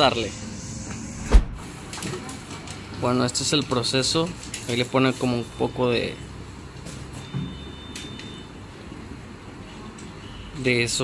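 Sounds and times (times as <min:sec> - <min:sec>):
shop room noise: 0:00.0 - 0:11.0
dull deep thump: 0:01.2 - 0:01.6.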